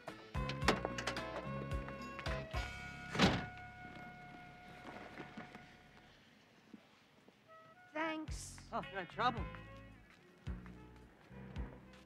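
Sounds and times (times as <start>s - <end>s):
background music with held notes: 0.0s - 6.0s, 7.5s - 12.0s
loud thunk: 3.1s - 3.5s.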